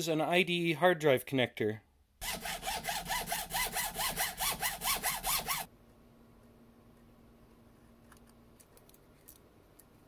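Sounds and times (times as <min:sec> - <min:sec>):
hacksaw cutting plastic: 0:02.2 - 0:05.7.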